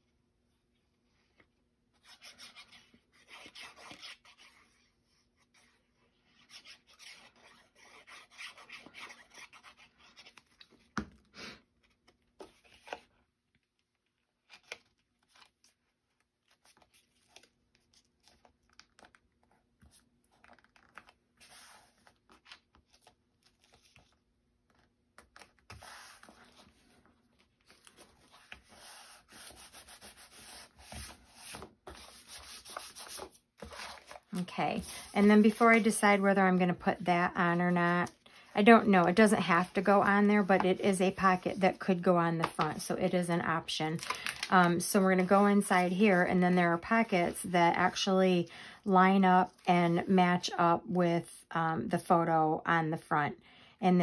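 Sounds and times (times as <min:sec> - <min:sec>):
paper rustling and rubbing: 0:16.4 - 0:42.8.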